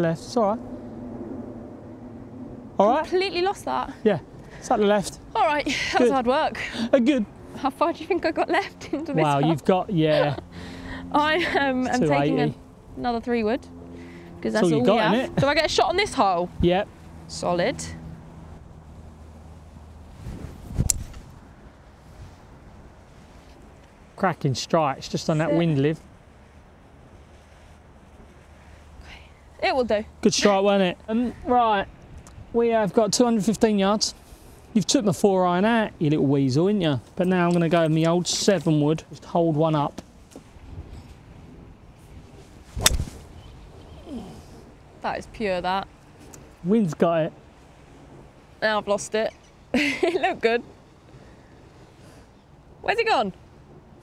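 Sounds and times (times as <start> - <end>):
golf club swish: 42.6 - 43.4
golf club striking ball: 42.8 - 43.2.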